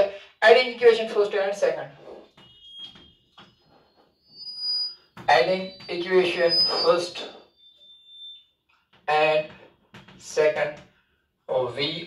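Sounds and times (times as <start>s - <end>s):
chalk squeak: 2.0s - 8.4s.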